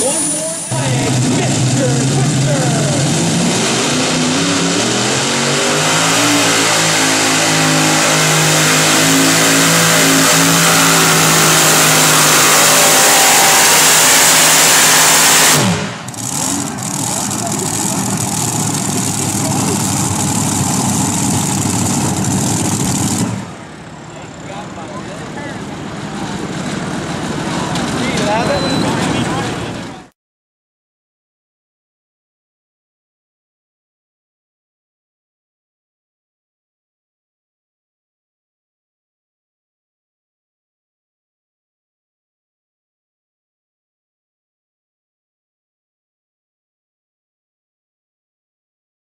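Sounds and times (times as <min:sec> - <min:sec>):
engine falling whine: 0:00.0 - 0:30.1
pulling tractor engines revving: 0:00.0 - 0:30.1.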